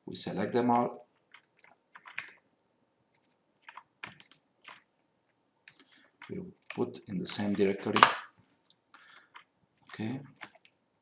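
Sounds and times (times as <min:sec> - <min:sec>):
keyboard and mouse clicks: 0:01.1 - 0:02.4, 0:03.1 - 0:04.9, 0:05.7 - 0:08.2, 0:09.1 - 0:10.8.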